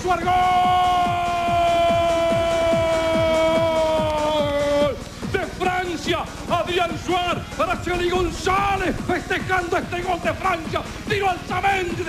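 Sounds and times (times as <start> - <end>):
commentator shouting goal: 0.0 - 12.0
electronic dance music: 0.0 - 12.0.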